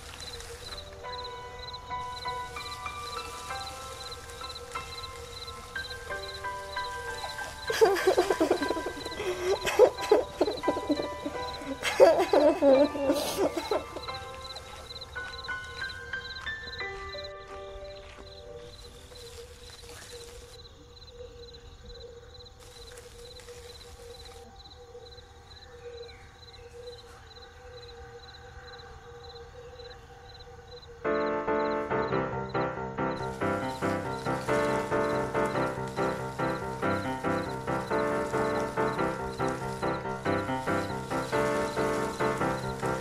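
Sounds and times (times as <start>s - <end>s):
insects chirping: 0.0s - 43.0s
soft background music: 0.2s - 19.6s, 31.0s - 43.0s
high voice sobbing: 7.7s - 14.0s.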